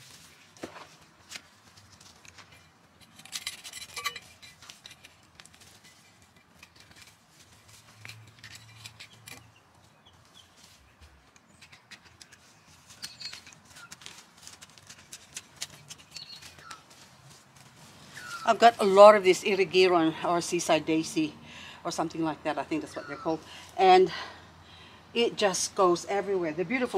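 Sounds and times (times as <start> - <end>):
hand cultivator scraping soil: 10.4 - 19.8.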